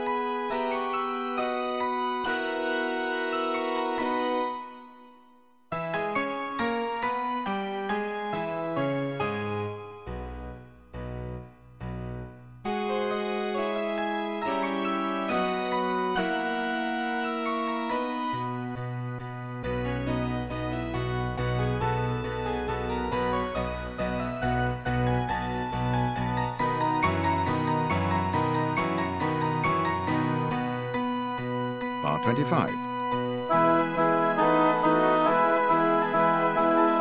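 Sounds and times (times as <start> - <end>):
organ and piano playing chords: 0.0 - 37.0.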